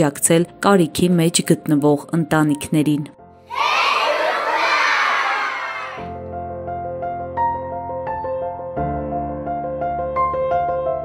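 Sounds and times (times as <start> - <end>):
children cheering and shouting: 3.5 - 6.2.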